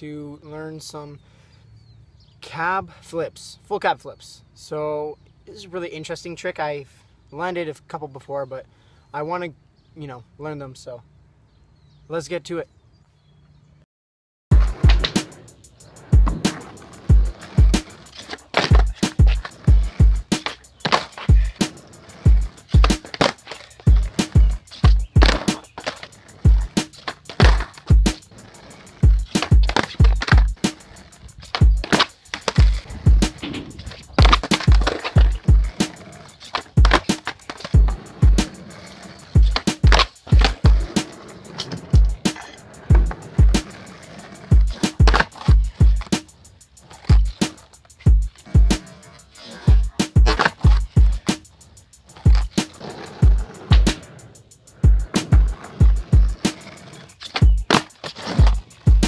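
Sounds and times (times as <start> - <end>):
background music with steady beat: 14.5 - 59.0
skateboard wheels rolling on asphalt: 14.5 - 59.0
skateboard popping and landing: 14.6 - 59.0.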